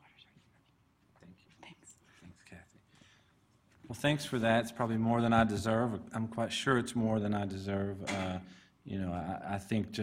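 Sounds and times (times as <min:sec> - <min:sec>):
faint whispered voices: 0:00.0 - 0:02.8.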